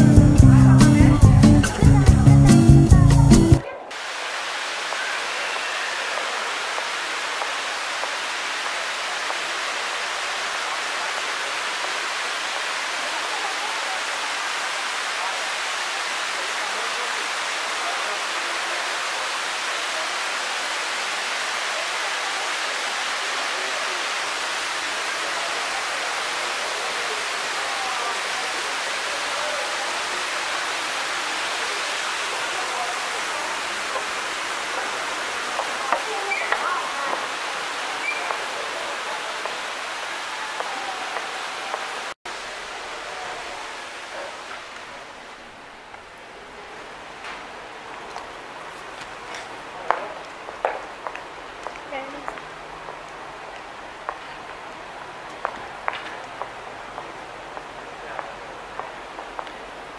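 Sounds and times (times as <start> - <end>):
waterfall rushing: 3.5 - 59.9.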